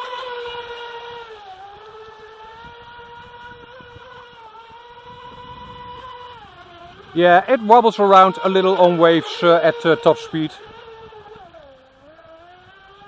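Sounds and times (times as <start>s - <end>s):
electric boat motor whining: 0.0s - 13.0s.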